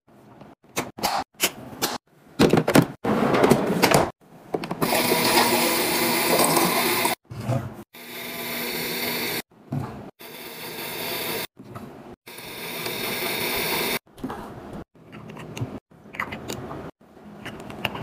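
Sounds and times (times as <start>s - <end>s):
water dispenser running: 4.7s - 7.2s, 12.3s - 14.0s.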